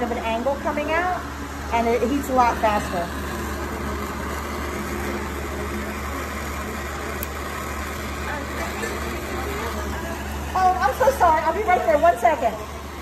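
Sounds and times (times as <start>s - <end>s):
gas torch hissing: 0.0s - 13.0s.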